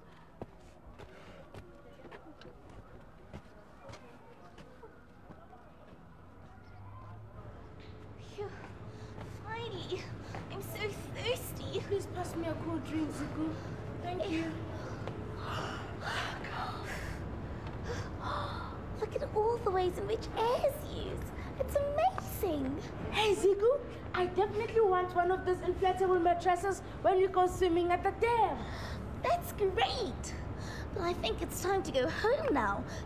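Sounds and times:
soft footsteps: 0.0s - 7.2s
faint distant voices: 0.0s - 27.2s.

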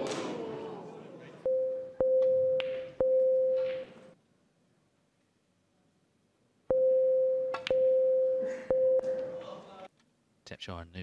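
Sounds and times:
crowd noise: 0.0s - 2.0s.

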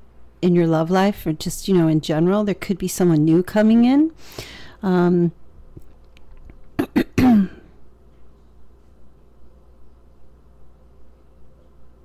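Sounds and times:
woman clearing her throat: 6.8s - 7.7s.

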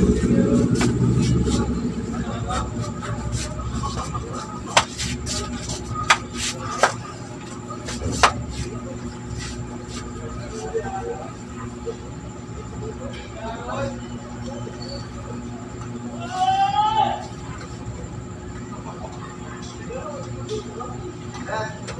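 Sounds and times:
passing vehicle engine: 0.0s - 4.3s.

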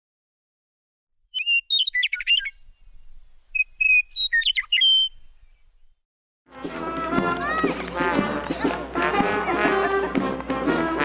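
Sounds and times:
bird chirping and whistling: 1.3s - 5.8s.

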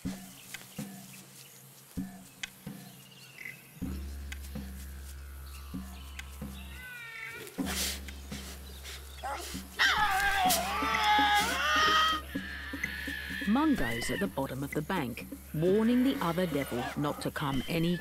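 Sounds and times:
low background music drone: 0.0s - 18.0s
rustles and snaps: 0.1s - 2.6s, 6.1s - 11.6s
tasmanian devil calling: 4.8s - 18.0s.

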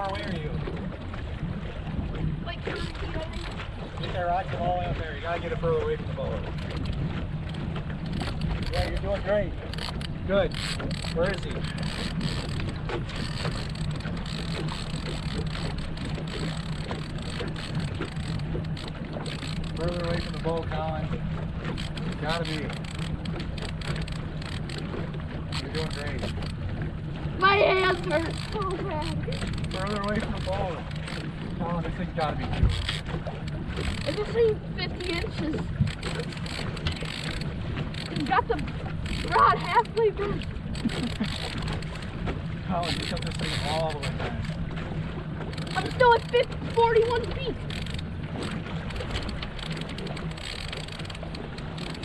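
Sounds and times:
boat motor humming: 0.0s - 52.0s
water wash: 0.0s - 52.0s.

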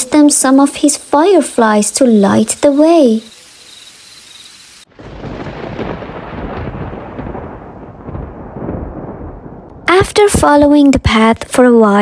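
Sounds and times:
thunder crack and rumble: 4.9s - 11.5s.

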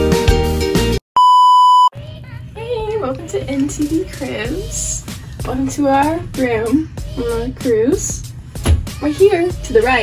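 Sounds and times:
test-pattern beep: 1.2s - 1.9s.

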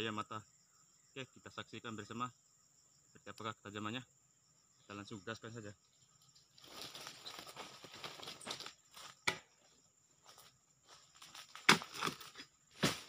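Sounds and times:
palm leaves rustling and tearing: 11.0s - 13.0s.

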